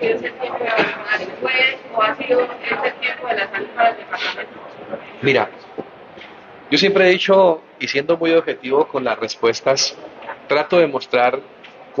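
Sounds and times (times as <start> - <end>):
person talking: 0.0 - 5.8.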